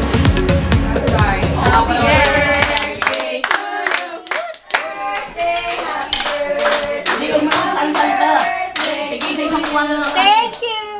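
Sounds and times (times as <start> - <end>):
voices singing: 0.9 - 10.9
rhythmic hand-clapping: 1.6 - 10.8.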